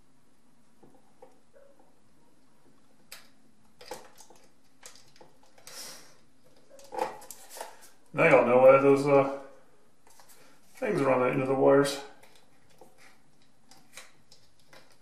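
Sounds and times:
wire clicks and rustles: 0.6s - 8.2s, 12.1s - 15.0s.

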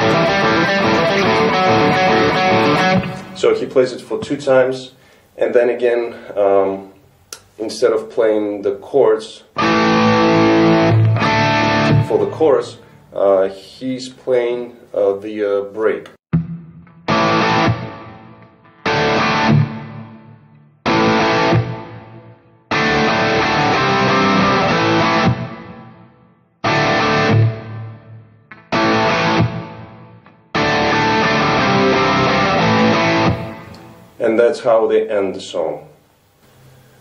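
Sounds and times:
electric guitar chords ringing: 0.0s - 4.0s, 9.6s - 13.2s, 16.3s - 34.2s.

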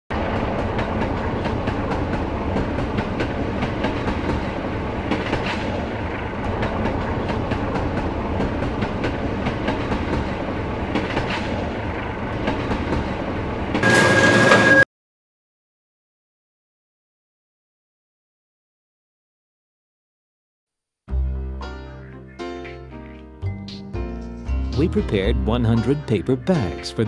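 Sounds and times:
subway train rumble: 0.1s - 14.8s
wheels clacking over rail joints: 0.1s - 14.8s.

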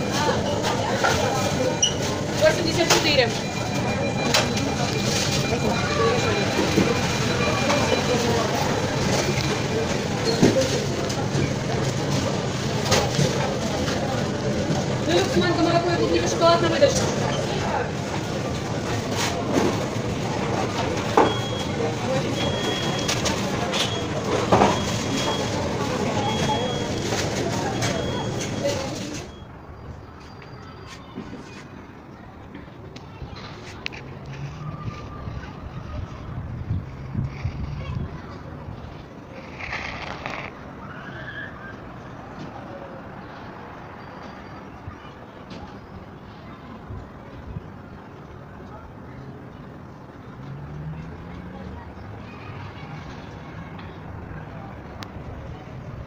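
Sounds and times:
distant city traffic hum: 0.0s - 56.0s.

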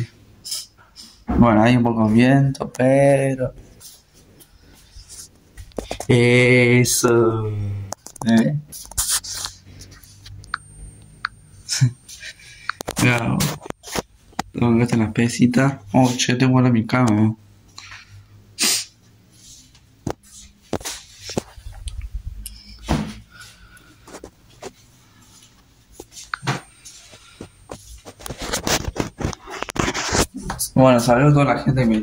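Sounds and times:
thump: 22.9s - 23.2s.

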